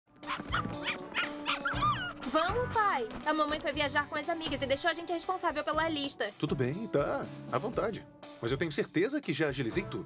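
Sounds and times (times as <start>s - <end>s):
light background music: 0.1s - 10.0s
cartoon puppies yipping: 0.2s - 2.6s.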